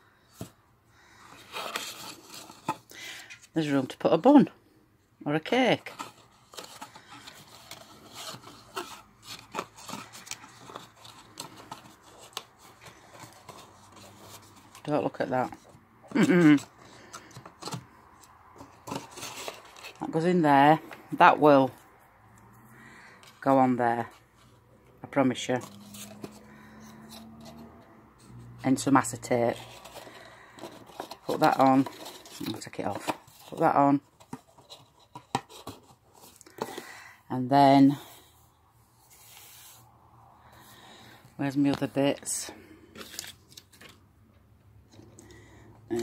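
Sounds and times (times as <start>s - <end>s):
cardstock rubbing and scraping: 1.3s - 3.6s, 5.6s - 20.2s, 25.2s - 36.9s.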